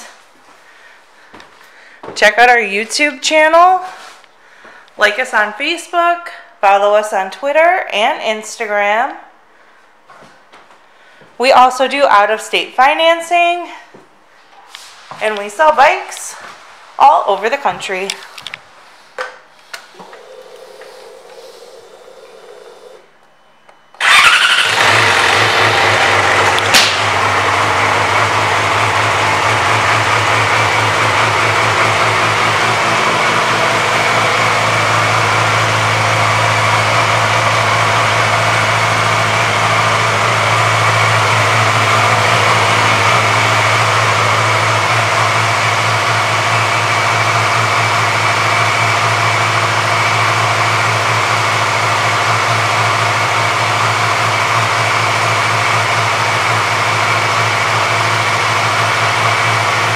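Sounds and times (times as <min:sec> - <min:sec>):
motorcycle engine idling: 0:24.0 - 0:59.9.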